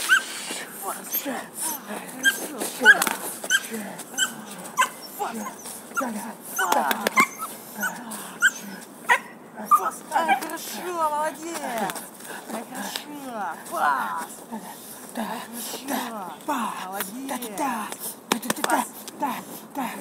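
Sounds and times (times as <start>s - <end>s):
puppy whining: 0.0s - 0.2s, 2.2s - 10.5s
puppy barking: 2.2s - 10.5s.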